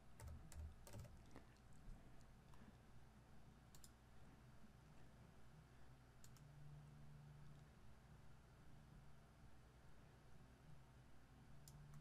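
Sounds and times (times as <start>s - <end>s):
computer mouse clicks: 0.0s - 1.4s, 3.7s - 4.0s, 6.2s - 6.5s.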